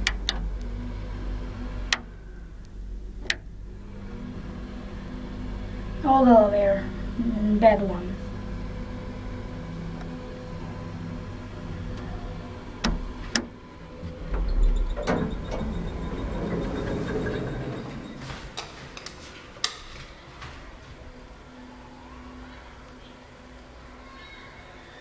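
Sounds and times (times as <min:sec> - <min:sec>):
elevator motor humming: 0:00.0 - 0:24.8.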